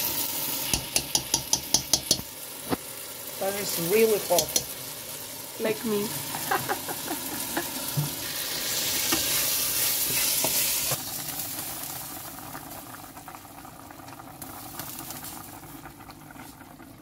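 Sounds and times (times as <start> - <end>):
pot bubbling while simmering: 0.0 - 17.0
rice sizzling in oil: 0.0 - 17.0.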